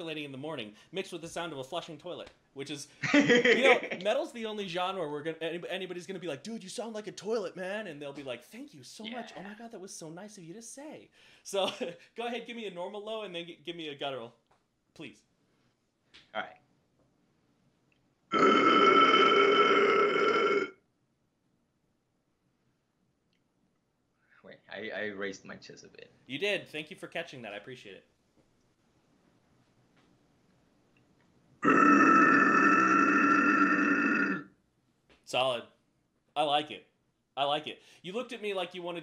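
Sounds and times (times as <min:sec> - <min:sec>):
man's distorted growl scream: 0:18.3 - 0:20.7, 0:31.6 - 0:34.4.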